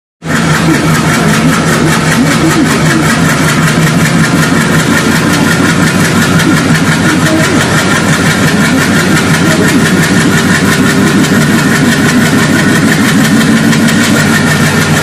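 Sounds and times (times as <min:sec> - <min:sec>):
diesel locomotive engine running: 0:00.2 - 0:15.0.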